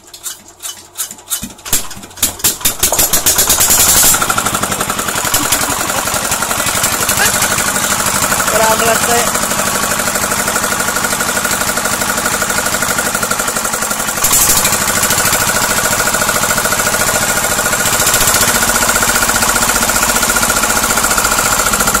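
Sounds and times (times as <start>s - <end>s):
small diesel engine knocking: 1.4s - 22.0s.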